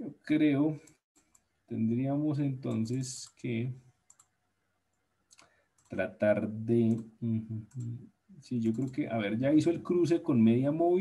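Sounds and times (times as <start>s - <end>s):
computer mouse clicks: 4.0s - 6.0s, 7.7s - 7.9s, 8.7s - 9.0s.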